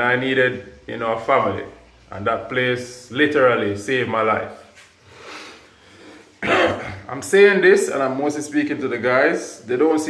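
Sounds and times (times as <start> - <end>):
breath: 5.0 - 6.4
man clearing his throat: 6.4 - 7.1.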